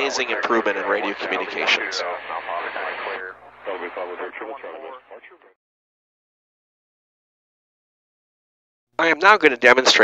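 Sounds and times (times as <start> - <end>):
radio speech: 0.0 - 5.6.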